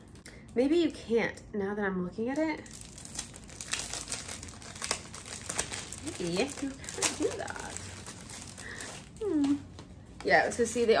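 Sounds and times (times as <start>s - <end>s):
plastic sleeve crinkling: 2.3s - 11.0s.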